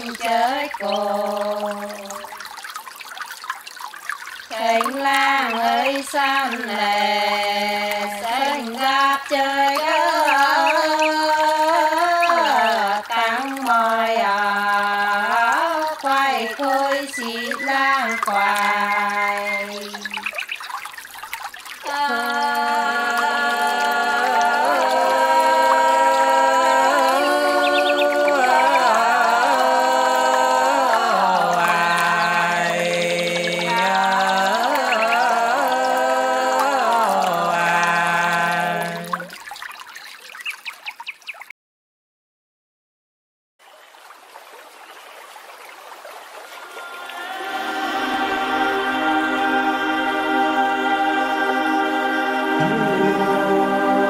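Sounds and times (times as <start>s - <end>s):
folk singing with gliding notes: 0.0s - 2.6s, 4.4s - 20.6s, 21.8s - 39.5s, 46.5s - 54.0s.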